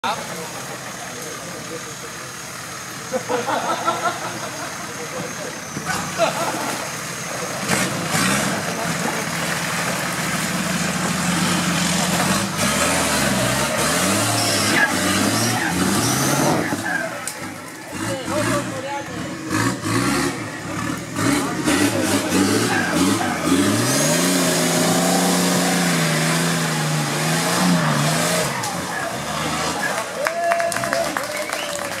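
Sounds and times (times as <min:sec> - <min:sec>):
spectators' voices: 0:00.0 - 0:11.6, 0:14.5 - 0:32.0
engine revving hard: 0:07.6 - 0:09.2, 0:10.8 - 0:30.2
people clapping: 0:29.8 - 0:32.0.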